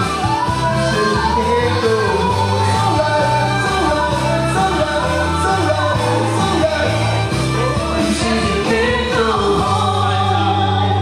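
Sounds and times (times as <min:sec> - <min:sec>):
man singing: 0:00.0 - 0:11.0
recorded backing track: 0:00.0 - 0:11.0
woman singing: 0:00.0 - 0:11.0.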